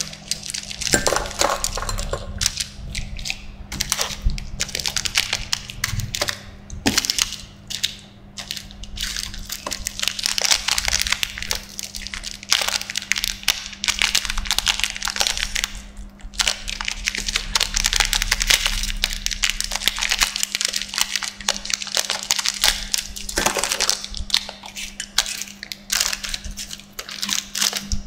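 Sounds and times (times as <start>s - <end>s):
plastic wrapper crinkling: 0.0s - 28.0s.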